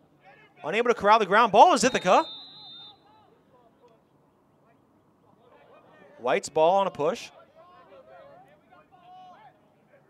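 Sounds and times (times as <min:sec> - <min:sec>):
faint distant voices: 0:01.8 - 0:06.2, 0:07.3 - 0:10.0.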